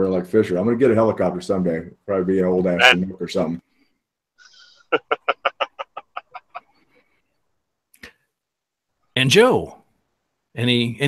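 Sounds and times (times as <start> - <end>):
man laughing: 4.9 - 6.8.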